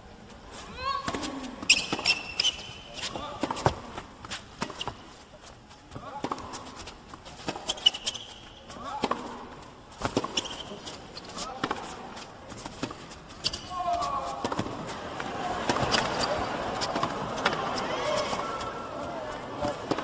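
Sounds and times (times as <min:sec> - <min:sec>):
tennis ball bouncing on court: 0:08.9 - 0:09.4, 0:10.0 - 0:10.7, 0:11.5 - 0:12.0
crowd voices calling out: 0:13.7 - 0:20.0.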